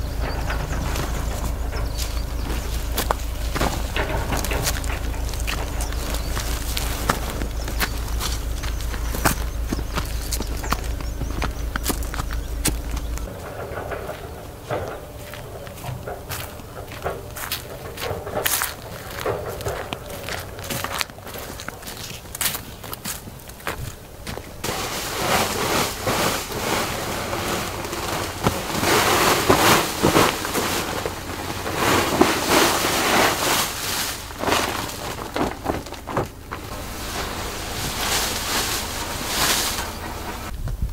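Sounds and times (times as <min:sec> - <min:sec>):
footsteps on dirt path: 0:00.0 - 0:40.9
steady rustling: 0:00.0 - 0:40.9.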